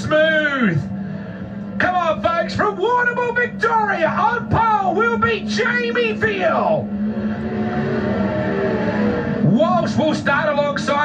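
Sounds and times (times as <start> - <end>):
race car engine drone: 0.0 - 11.0
track noise: 0.0 - 11.0.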